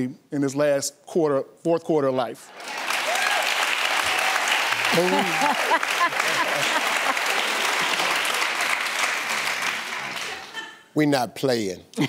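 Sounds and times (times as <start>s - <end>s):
audience applauding: 2.5s - 10.7s.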